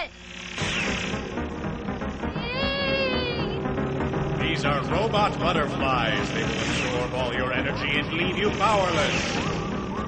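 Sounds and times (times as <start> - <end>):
cartoon background music: 0.6 - 10.0.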